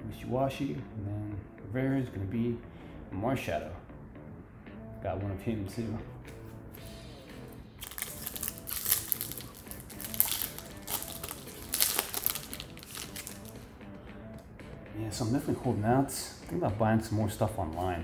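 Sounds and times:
faint background music: 0:00.0 - 0:18.0
foil wrapper crinkling: 0:07.8 - 0:13.6.

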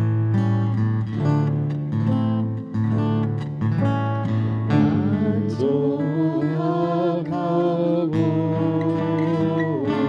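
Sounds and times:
strummed acoustic guitar: 0:00.0 - 0:10.0
voices singing held notes: 0:04.8 - 0:10.0.

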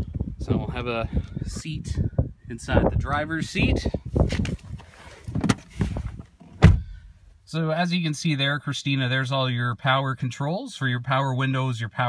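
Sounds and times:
rustling against car seat: 0:04.1 - 0:07.0.

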